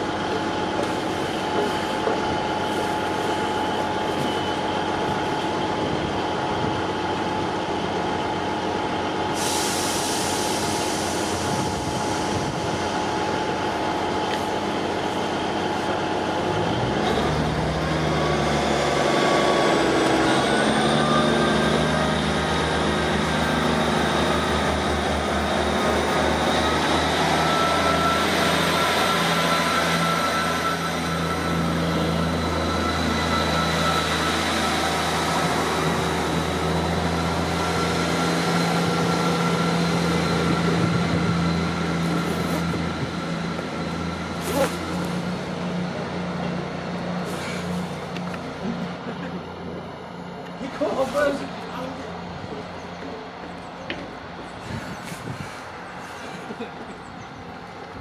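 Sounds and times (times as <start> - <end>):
diesel train passing: 0.0 - 58.0.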